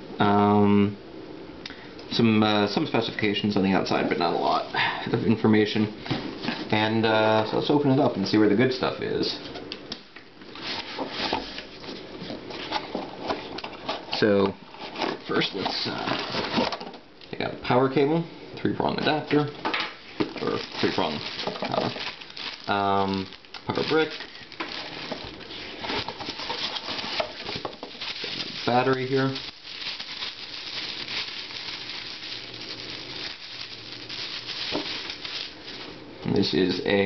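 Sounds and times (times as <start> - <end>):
plastic packaging crinkling: 10.6 - 17.0, 19.2 - 36.8
bubble wrap crackling: 19.2 - 36.8
cardboard box being opened: 23.8 - 28.6.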